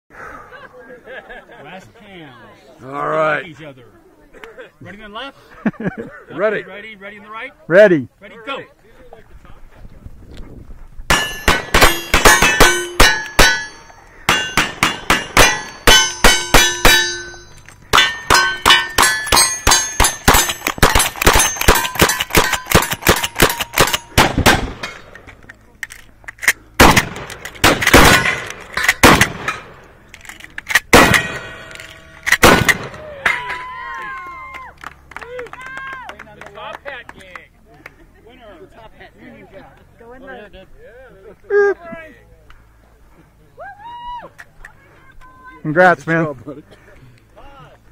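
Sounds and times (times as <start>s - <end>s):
steel targets clanging: 11.1s - 25.4s, 27.3s - 33.6s
rapid gunfire: 19.7s - 24.8s.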